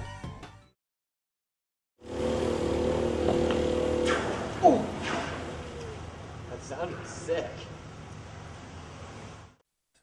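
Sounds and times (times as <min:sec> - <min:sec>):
small gas engine running: 0:02.0 - 0:06.5
water spray hissing: 0:02.1 - 0:06.4.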